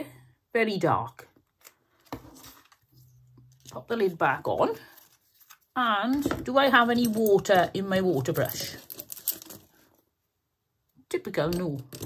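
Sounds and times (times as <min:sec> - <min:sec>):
light rustling of plastic items: 0:01.2 - 0:10.2.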